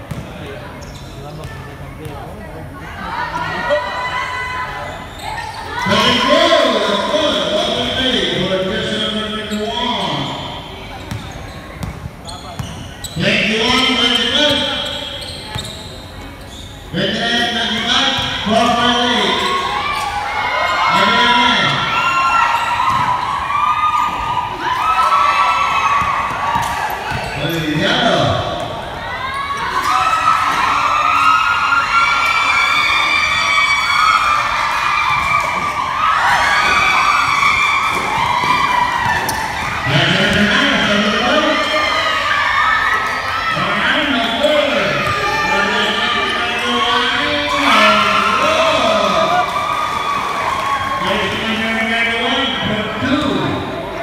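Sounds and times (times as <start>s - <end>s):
people shouting and calling out: 2.7s - 11.0s, 16.9s - 54.0s.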